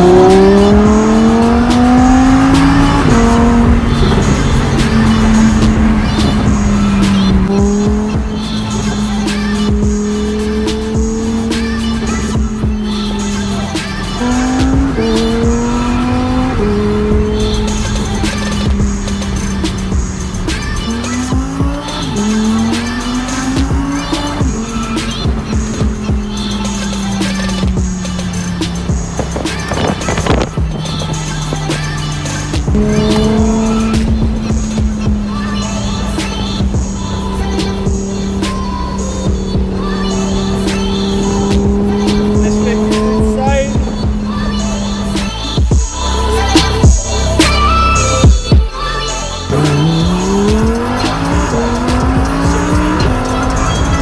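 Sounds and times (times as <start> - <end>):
background music: 0.0 - 54.0
car engine accelerating: 0.0 - 54.0.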